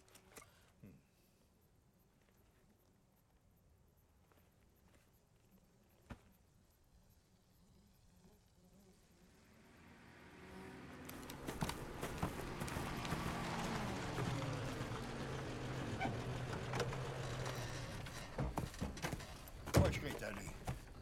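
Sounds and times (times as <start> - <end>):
car engine: 9.2 - 20.9.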